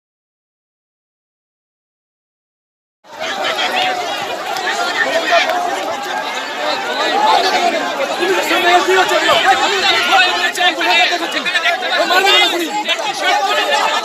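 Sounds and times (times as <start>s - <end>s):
crowd of men shouting: 3.1s - 14.0s.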